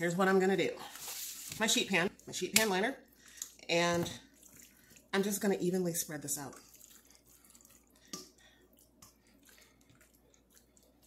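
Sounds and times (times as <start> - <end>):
wet food pushed with spoon: 3.1 - 5.2, 6.5 - 11.0.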